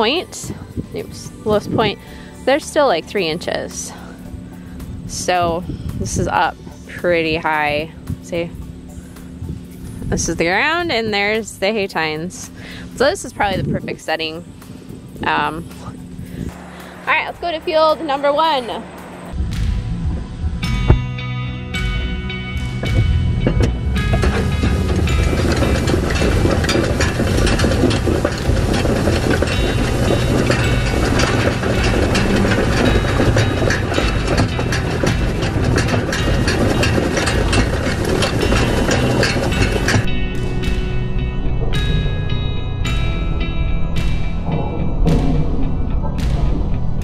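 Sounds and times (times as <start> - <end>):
background music: 0.0 - 12.3, 12.9 - 47.0
tractor: 0.0 - 19.4, 21.7 - 40.8
hay rake reel clattering: 21.9 - 40.2.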